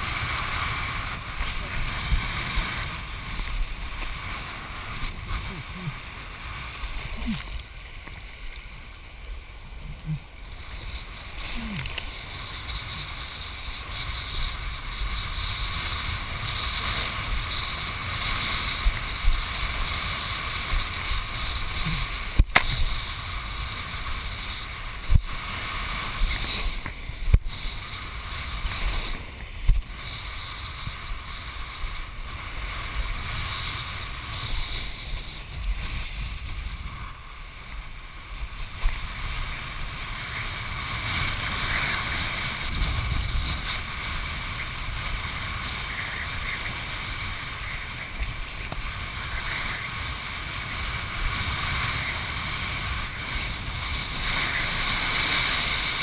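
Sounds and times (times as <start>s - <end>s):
wind buffeting camera: 0.0s - 56.0s.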